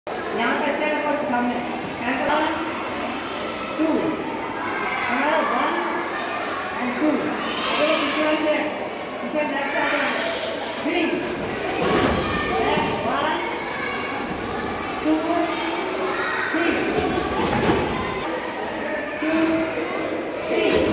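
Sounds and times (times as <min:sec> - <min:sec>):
indistinct voices in echoing hall: 0:00.1 - 0:20.9.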